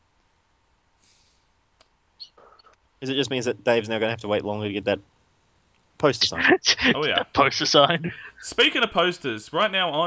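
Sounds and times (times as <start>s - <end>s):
faint hiss: 0.0s - 10.0s.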